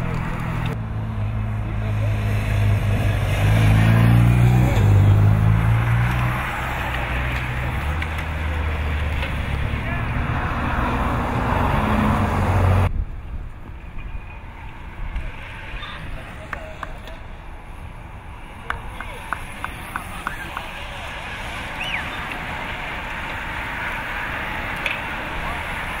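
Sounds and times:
motorcycle passing close: 0:00.0 - 0:12.9.

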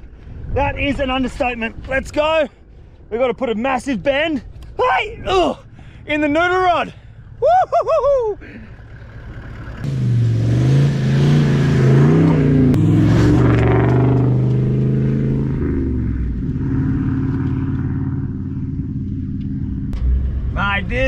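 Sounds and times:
vehicle engine revving: 0:08.6 - 0:21.0.

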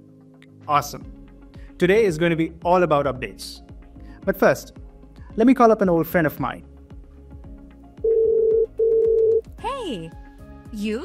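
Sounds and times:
soft background music: 0:00.0 - 0:11.0
call ringing tone: 0:08.0 - 0:09.5.

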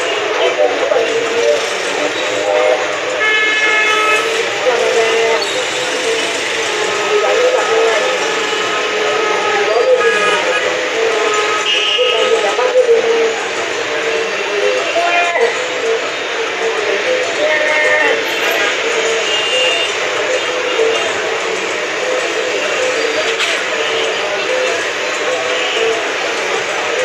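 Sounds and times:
babble of voices: 0:00.0 - 0:27.0
street traffic noise: 0:00.0 - 0:27.0
car horn blasts: 0:03.2 - 0:04.4.

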